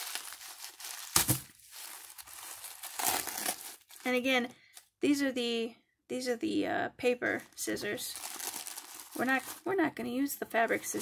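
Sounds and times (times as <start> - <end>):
tissue paper crinkling: 0.0 - 4.2, 7.4 - 9.8, 10.6 - 11.0.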